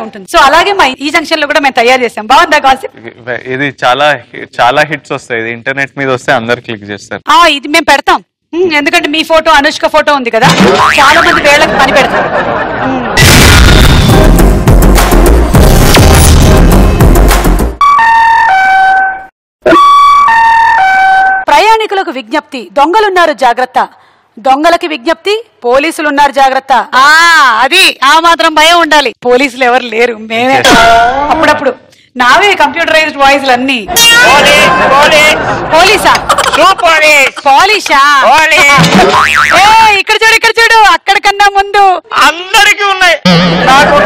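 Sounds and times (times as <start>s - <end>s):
cartoon boing sound effect: 10.5s - 11.5s, 38.8s - 39.6s, 43.2s - 43.7s.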